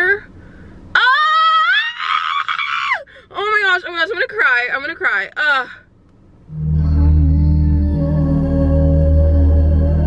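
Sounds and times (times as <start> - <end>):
woman squealing excitedly: 1.0 - 3.1.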